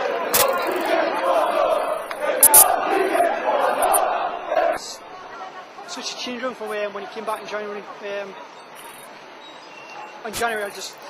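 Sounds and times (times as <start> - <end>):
crowd shouting and chanting: 0.0 - 8.8.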